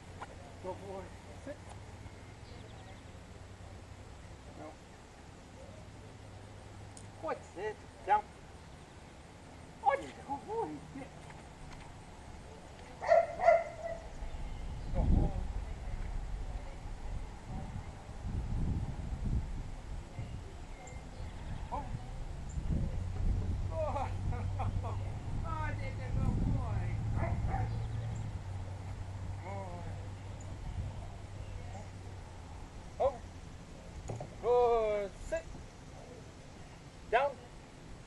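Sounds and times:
steady low hum: 0.0 - 38.0
dog barking: 13.0 - 14.1.

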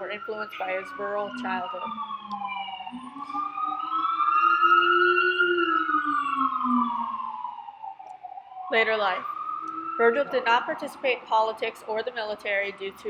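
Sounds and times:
emergency siren wailing: 0.0 - 13.0.

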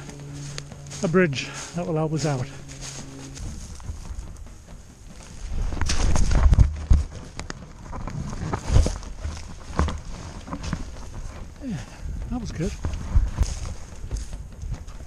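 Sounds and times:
camera rubbing against stalks: 0.0 - 15.0
footsteps through dry reeds: 0.0 - 15.0.

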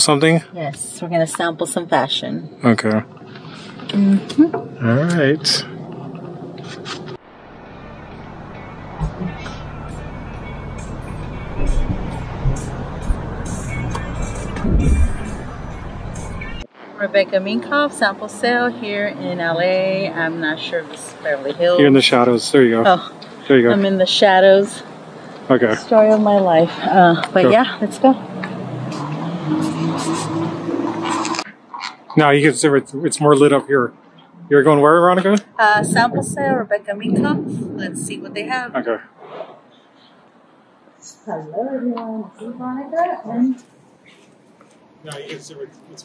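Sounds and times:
street traffic rumble: 0.0 - 46.0
low engine hum: 3.7 - 16.6
background music: 7.7 - 16.7
low thumps: 10.8 - 16.6.

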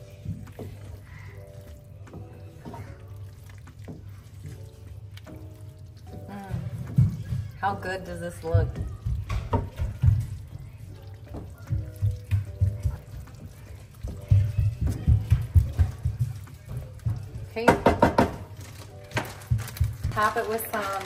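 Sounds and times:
background music: 0.0 - 21.0
spoon stirring pasta in sauce: 0.0 - 21.0.

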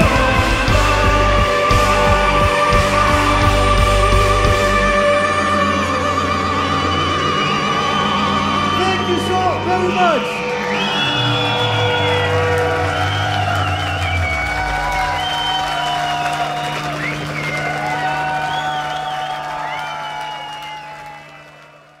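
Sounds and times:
audience applauding and cheering: 0.0 - 22.0.

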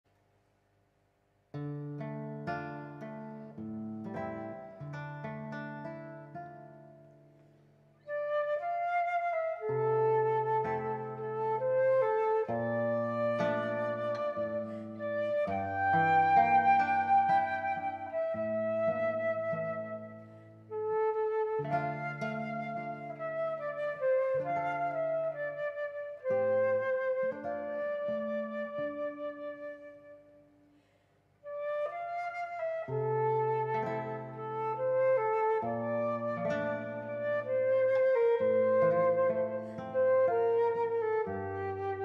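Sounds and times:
classical guitar plucked chords: 1.5 - 30.7, 31.4 - 42.0
flute melody: 8.0 - 30.6, 31.4 - 42.0.

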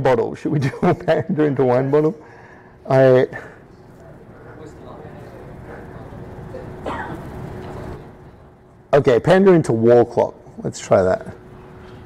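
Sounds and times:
faint constant hum: 0.0 - 12.0.

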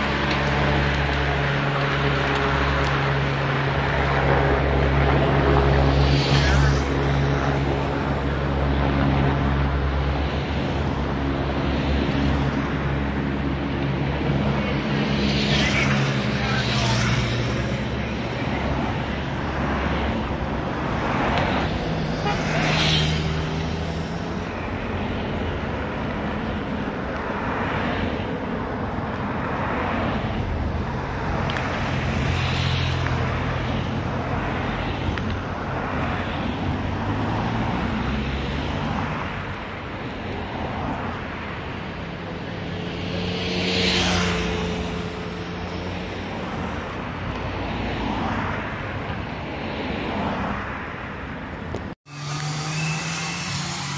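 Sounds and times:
cars driving past: 0.0 - 53.9
tyres on tarmac: 0.0 - 53.9.

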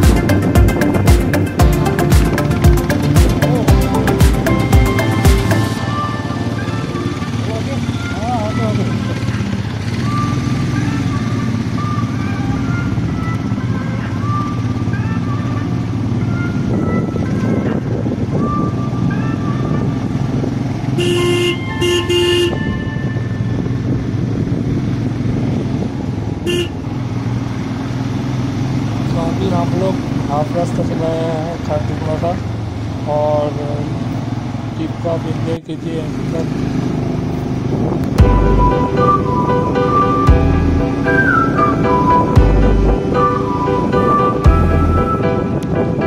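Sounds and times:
motorcycle engine running: 0.0 - 45.9
road and wind noise: 0.0 - 46.0
vehicle horn toots: 21.0 - 23.4, 26.4 - 26.8.

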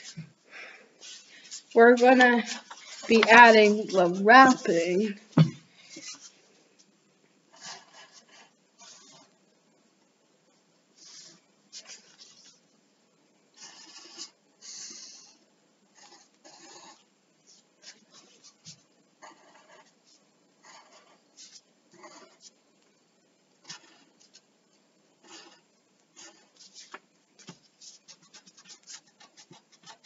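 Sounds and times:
pencil scratching on paper: 1.0 - 5.0, 7.5 - 9.4, 11.0 - 12.6, 16.0 - 22.6, 23.6 - 24.5, 25.2 - 30.0.

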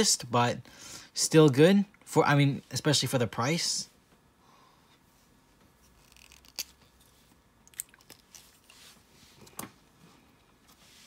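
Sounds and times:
soft scuff on tabletop: 10.7 - 11.0.

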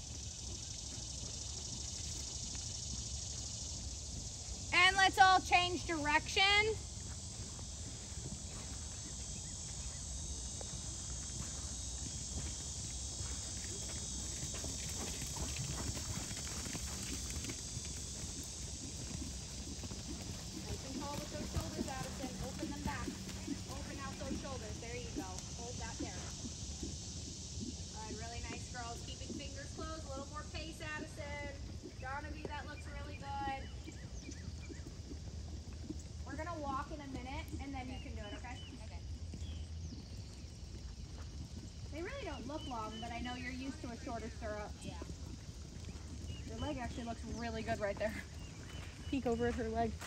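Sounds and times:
horse hoofbeats on sand: 0.0 - 50.0.

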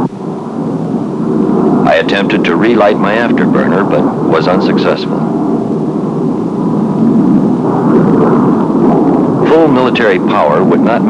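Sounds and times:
jet engine rumble: 0.0 - 11.0.

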